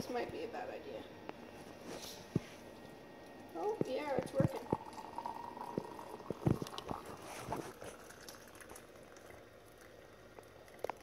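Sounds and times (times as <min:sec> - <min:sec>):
liquid pouring through a strainer: 0:04.3 - 0:11.0.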